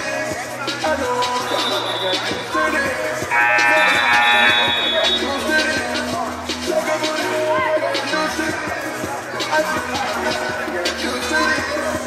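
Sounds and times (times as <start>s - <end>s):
music playing in gym: 0.0s - 12.0s
scoreboard buzzer: 3.3s - 5.4s.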